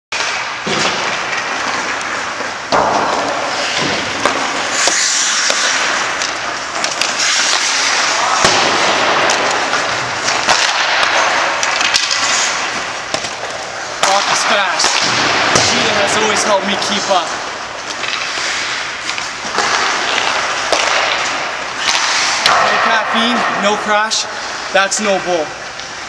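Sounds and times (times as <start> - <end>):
hockey stick clacking on puck: 0.2 - 17.0, 17.8 - 23.0
skates scraping on ice: 0.2 - 25.7.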